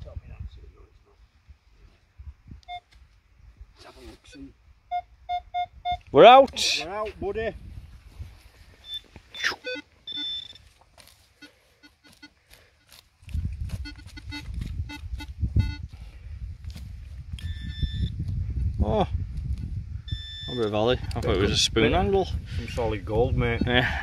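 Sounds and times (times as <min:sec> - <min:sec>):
metal detector pinpointer beeping: 0:02.6 - 0:02.9, 0:04.3 - 0:06.1, 0:08.8 - 0:10.7, 0:11.4 - 0:13.0, 0:13.7 - 0:15.9, 0:17.4 - 0:18.2, 0:19.6 - 0:20.7.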